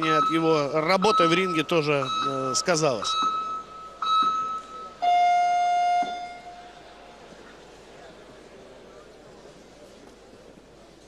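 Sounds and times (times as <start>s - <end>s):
short high beeps: 0.0s - 6.8s.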